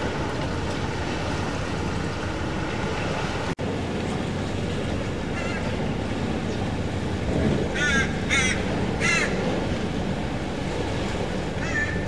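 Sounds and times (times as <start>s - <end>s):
crow cawing: 7.8s - 9.4s, 11.6s - 12.0s.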